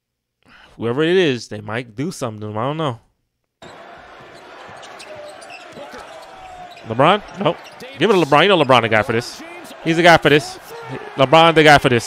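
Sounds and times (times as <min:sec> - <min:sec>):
arena crowd noise: 0:03.6 - 0:12.0.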